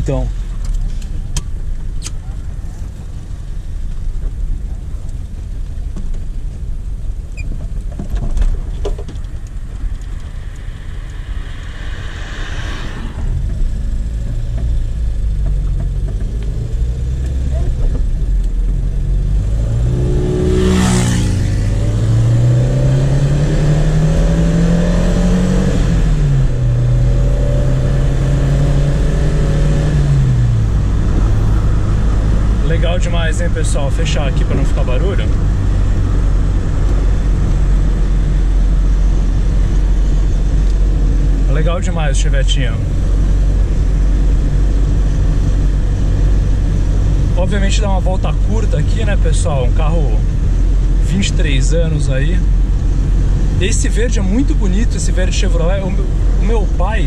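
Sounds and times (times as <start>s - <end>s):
car engine revving: 8.4s - 57.0s.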